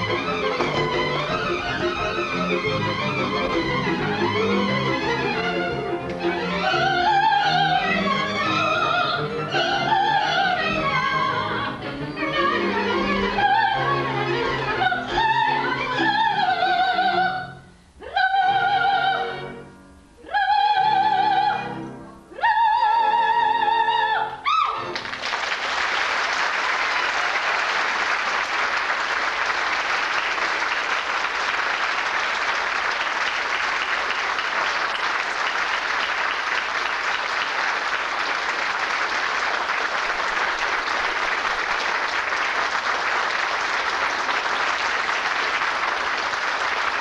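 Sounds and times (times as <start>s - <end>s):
audience applauding: 24.9s - 47.0s.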